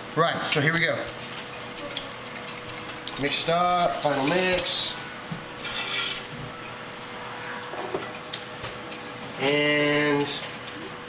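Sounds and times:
fork whisking eggs in a bowl: 1.2s - 4.8s, 8.1s - 11.0s.

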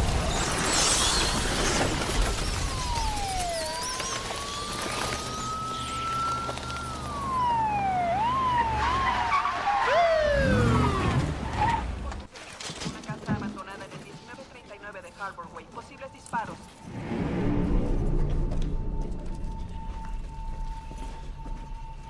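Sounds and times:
police sirens wailing and yelping: 1.9s - 12.3s
car engines running: 2.0s - 12.3s.

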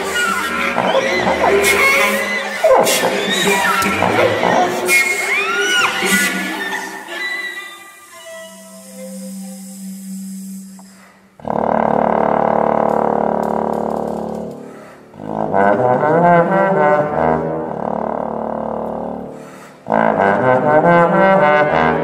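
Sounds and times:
chamber ensemble playing: 0.0s - 10.8s
loud brass chords: 11.4s - 22.0s.

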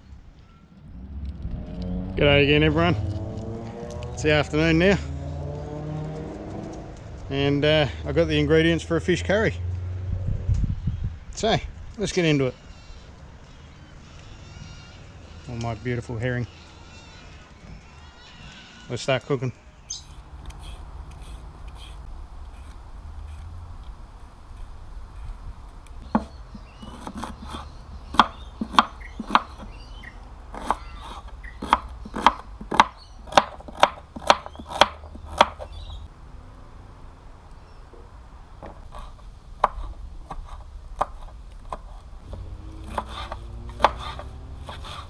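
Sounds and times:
knife chopping vegetables on board: 26.0s - 29.7s, 30.5s - 35.7s, 42.9s - 45.0s.

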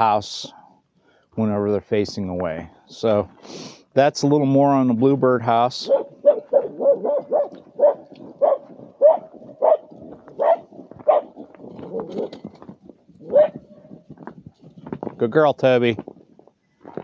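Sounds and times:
dog barking: 5.8s - 11.3s, 13.3s - 13.6s.

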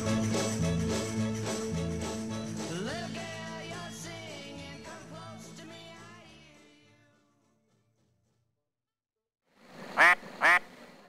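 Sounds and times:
short pitched calls: 9.9s - 10.7s.

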